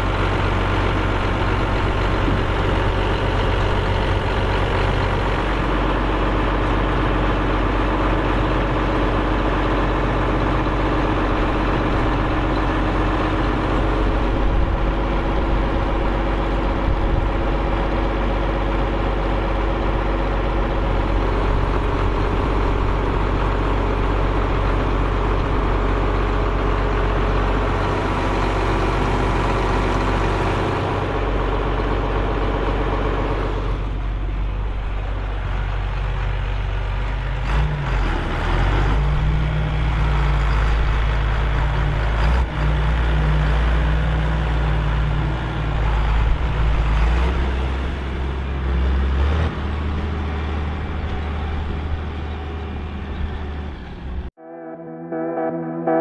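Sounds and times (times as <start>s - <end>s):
tractor diesel engine running: 0.0s - 54.4s.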